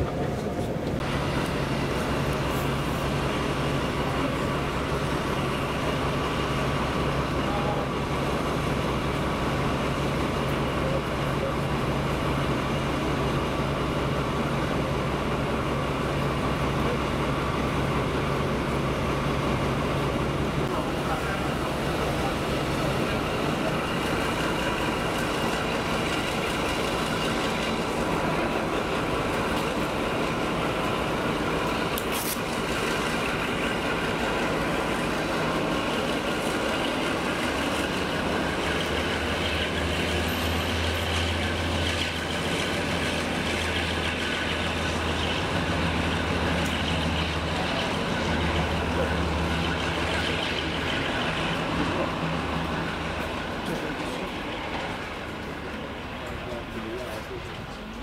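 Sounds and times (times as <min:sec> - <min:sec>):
diesel locomotive engine throbbing: 0:00.0 - 0:58.0.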